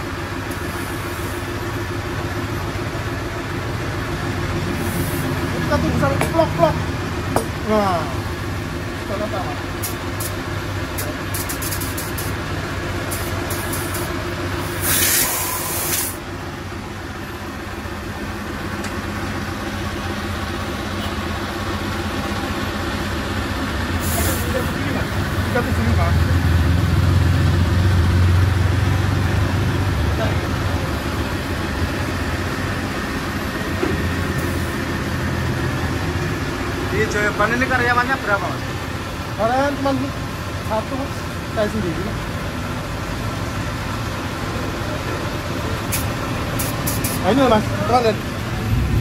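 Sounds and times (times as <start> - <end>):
compressed air hissing: 4.8 - 5.4, 9.8 - 12.4, 13.0 - 16.2, 24.0 - 24.7, 45.9 - 47.3.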